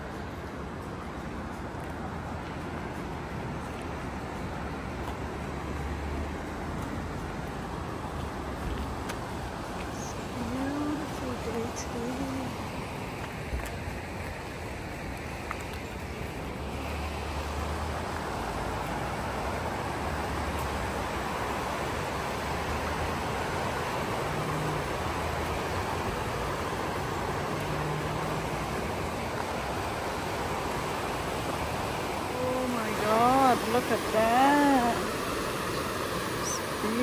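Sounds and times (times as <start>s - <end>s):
river rushing over rocks: 0.0s - 37.0s.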